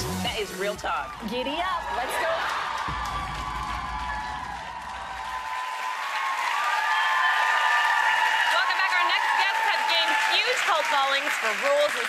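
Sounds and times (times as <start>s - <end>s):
theme music: 0.0s - 5.8s
audience applauding: 0.9s - 12.0s.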